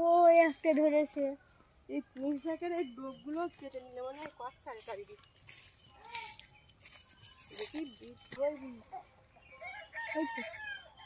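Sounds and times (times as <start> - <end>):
rooster crowing: 9.6 - 11.0.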